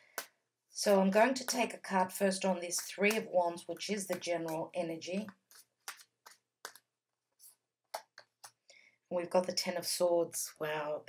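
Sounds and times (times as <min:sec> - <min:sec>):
cards clicking and flicking: 0:04.0 - 0:06.9.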